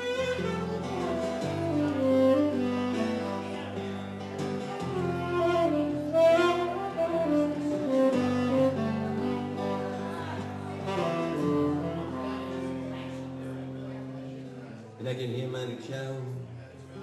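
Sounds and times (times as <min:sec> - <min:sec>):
instrumental duo playing: 0:00.0 - 0:15.0.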